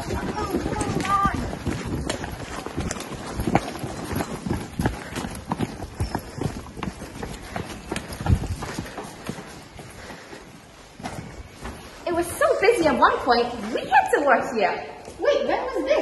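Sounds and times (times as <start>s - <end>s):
footsteps running on wet pavement: 0.0s - 11.8s.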